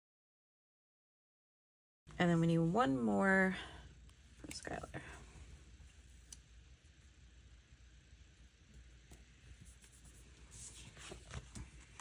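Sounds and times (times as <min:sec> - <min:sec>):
paper rustle: 0:09.6 - 0:12.0.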